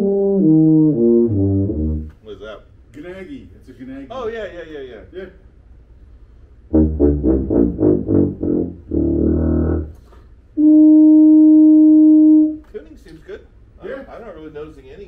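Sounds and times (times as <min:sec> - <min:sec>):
tuba notes: 0:00.0 - 0:02.2, 0:06.7 - 0:12.7.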